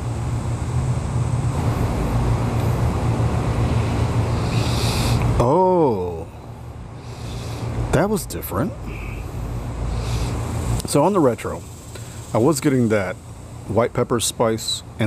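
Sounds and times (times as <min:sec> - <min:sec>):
low steady rumble: 0:00.0 - 0:15.0.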